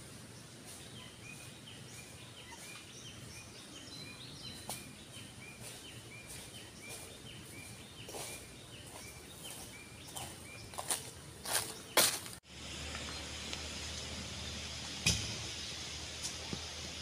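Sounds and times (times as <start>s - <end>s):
footsteps on dry leaves: 0.0s - 14.1s
faint forest background: 0.0s - 17.0s
bird calling: 0.7s - 12.2s.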